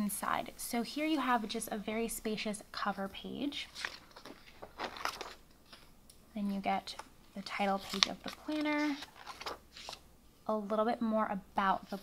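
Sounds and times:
paper page rustling: 0:03.7 - 0:05.8, 0:07.4 - 0:10.0.

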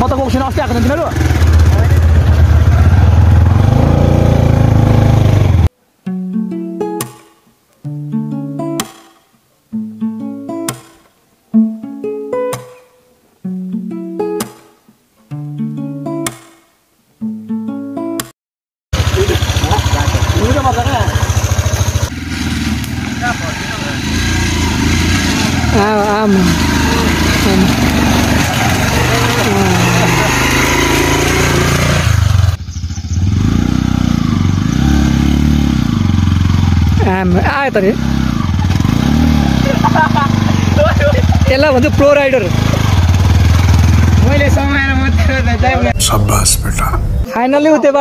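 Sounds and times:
motorcycle engine revving: 0:00.0 - 0:05.7, 0:19.0 - 0:46.0
voices talking: 0:19.0 - 0:21.5, 0:22.9 - 0:24.2, 0:25.6 - 0:30.6, 0:45.0 - 0:47.9.

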